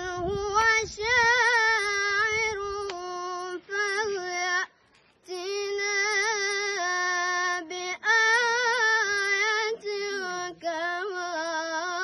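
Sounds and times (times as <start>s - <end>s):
boy chanting recitation: 0.0s - 12.0s.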